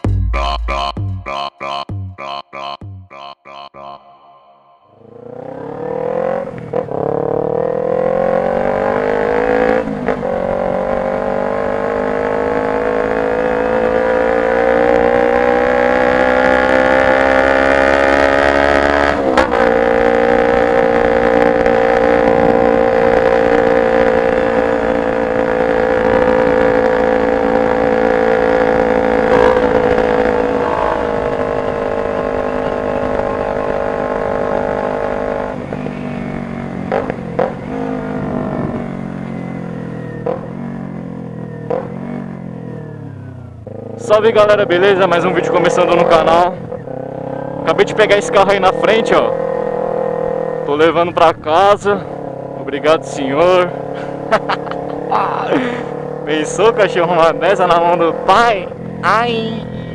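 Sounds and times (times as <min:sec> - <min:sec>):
motorcycle engine revving: 0:04.9 - 0:59.9.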